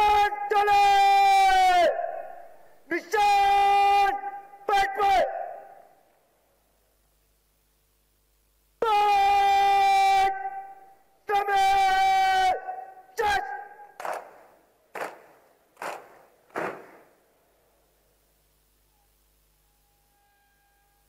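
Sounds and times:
brass bugle call: 18.9 - 21.0.

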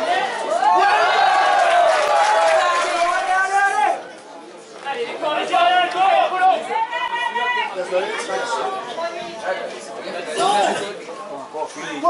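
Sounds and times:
people calling out and chattering: 0.0 - 12.0.

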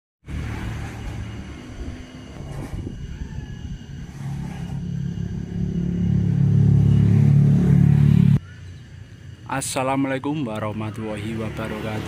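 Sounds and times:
low engine-like rumble: 0.3 - 12.0.

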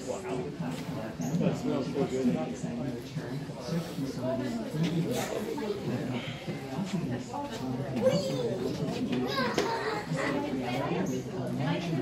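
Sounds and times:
children talking and calling out: 7.6 - 11.3.

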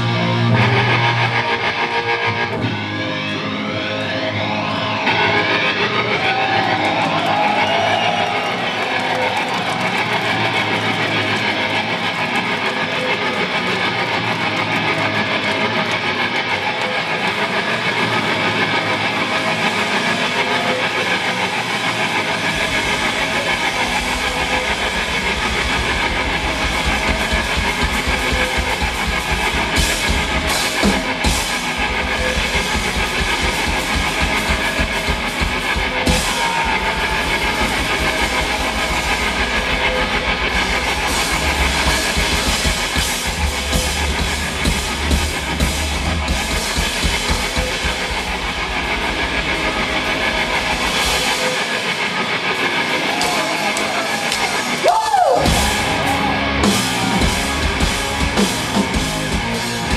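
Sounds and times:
distorted electric guitar: 0.0 - 59.9.

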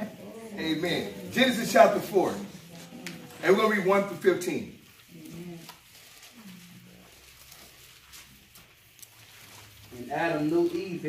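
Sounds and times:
faint hummed voice: 5.0 - 7.6.

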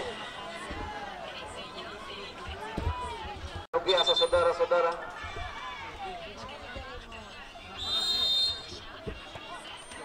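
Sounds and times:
crowd chatter: 0.0 - 10.0
referee's whistle blast: 3.8 - 4.8, 7.8 - 8.7.

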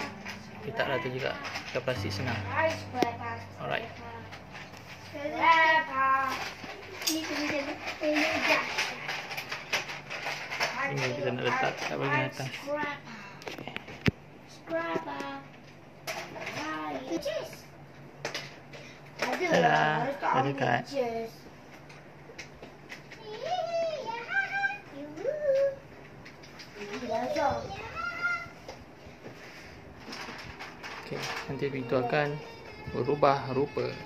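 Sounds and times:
faint household background: 0.0 - 34.0.

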